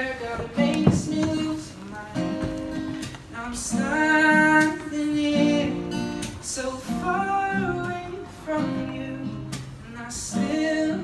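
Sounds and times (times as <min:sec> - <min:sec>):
acoustic guitar strumming: 0:00.0 - 0:11.0
man singing: 0:00.0 - 0:11.0.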